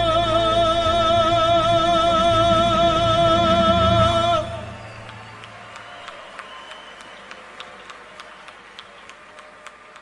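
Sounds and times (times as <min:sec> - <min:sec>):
hand claps: 0:05.1 - 0:10.0.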